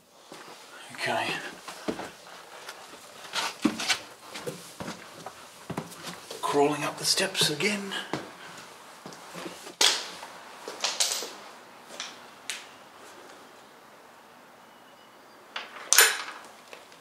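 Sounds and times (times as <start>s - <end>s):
footsteps on wooden steps: 0.3s - 10.8s.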